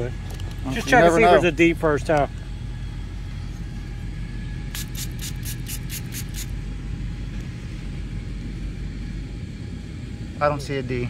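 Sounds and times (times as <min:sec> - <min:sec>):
low machine rumble: 0:00.0 - 0:11.0.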